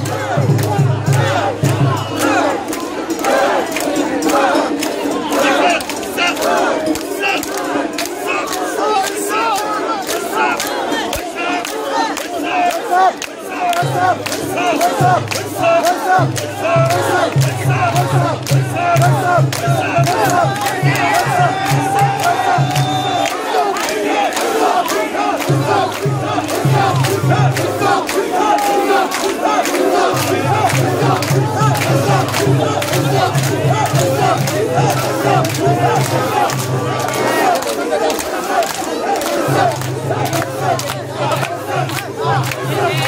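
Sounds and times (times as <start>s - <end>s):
crowd shouting rhythmic chant: 0.0s - 43.0s
low pulsing beat: 30.2s - 37.1s.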